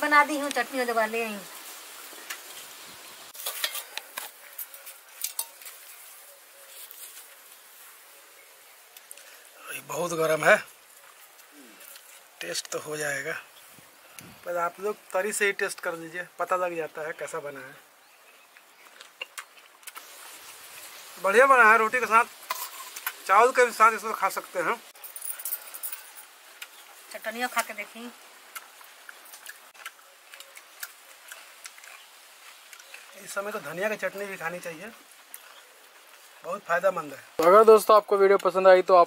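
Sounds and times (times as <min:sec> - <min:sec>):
metal plates clinking and scraping: 0:03.4 - 0:05.8, 0:22.5 - 0:23.2.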